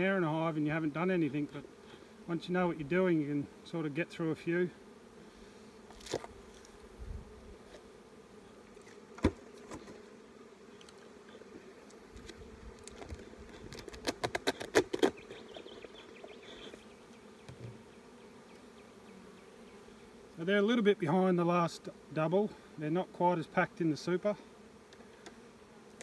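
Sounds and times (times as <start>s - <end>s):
bees humming: 0.0s - 26.0s
hive lid cracking open: 5.9s - 6.9s, 8.7s - 10.0s, 10.8s - 17.8s.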